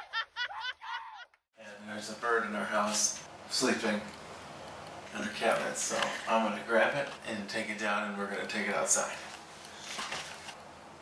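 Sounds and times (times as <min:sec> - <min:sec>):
person laughing: 0:00.0 - 0:01.4.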